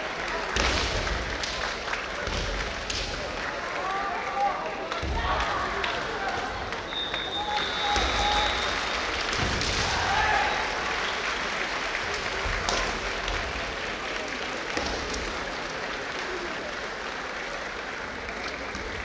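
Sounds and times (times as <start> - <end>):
audience applause in hall: 0.0 - 19.0.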